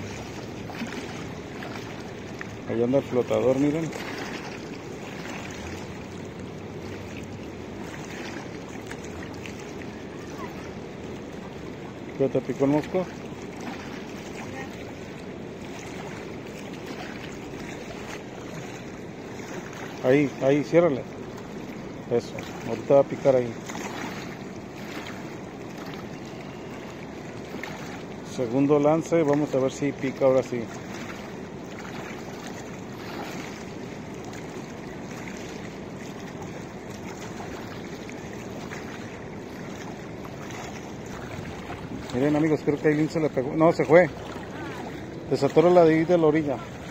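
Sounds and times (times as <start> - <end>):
fast-flowing river rushing: 0.0 - 46.9
small waves lapping: 0.0 - 46.9.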